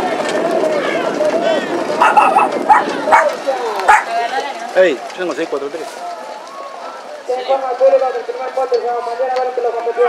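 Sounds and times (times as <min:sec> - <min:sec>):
people's voices: 0:00.0 - 0:10.0
dog barking: 0:02.0 - 0:04.1.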